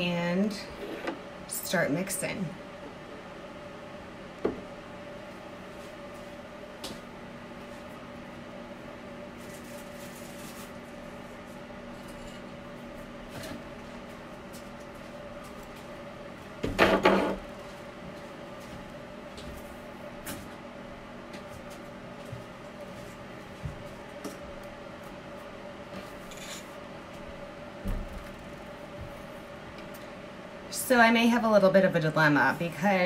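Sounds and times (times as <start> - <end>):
low room hum: 0.0 - 33.0.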